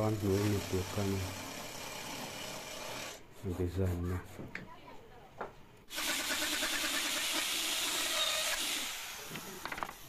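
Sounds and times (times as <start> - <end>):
router cutting into wood: 0.0 - 3.2, 5.9 - 10.0.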